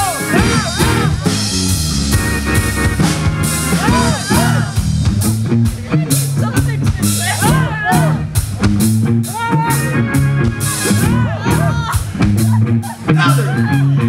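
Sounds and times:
drum beat: 0.0 - 13.8
electric guitar lead line: 0.0 - 14.0
rock band playing: 0.0 - 14.0.

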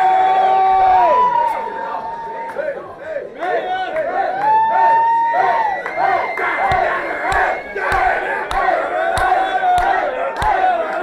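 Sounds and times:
crowd singing and chanting: 1.5 - 11.0
crowd clapping: 2.4 - 11.0.

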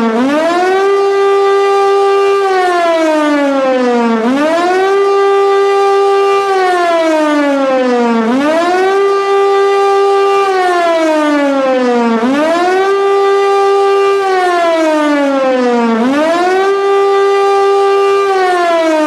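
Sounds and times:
siren wailing: 0.0 - 19.0.

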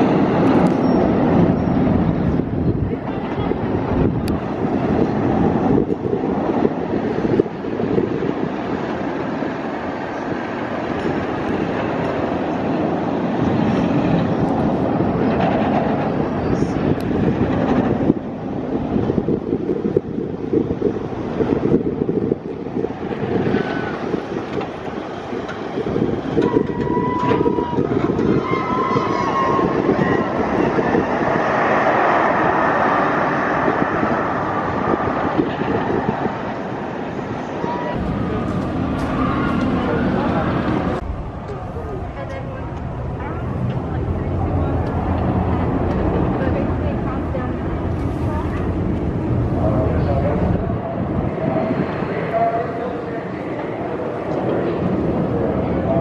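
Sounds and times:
roller coaster rumbling on rails: 0.0 - 56.0.

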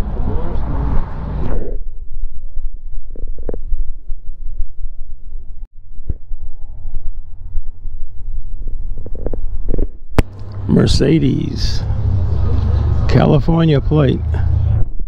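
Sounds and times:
faint voices: 10.5 - 14.5.

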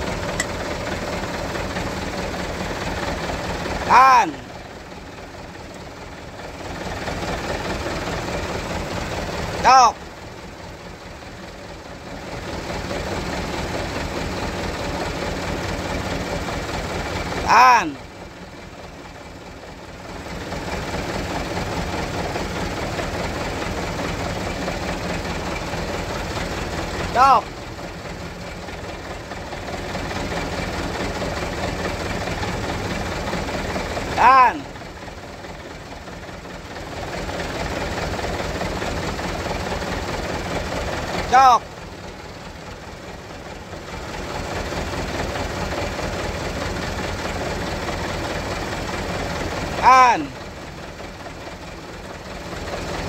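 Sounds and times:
car engine idling: 0.0 - 53.0
person shouting: 3.8 - 4.5, 9.6 - 10.0, 17.4 - 18.0, 27.1 - 27.5, 34.2 - 34.7, 41.3 - 41.6, 49.8 - 50.4.

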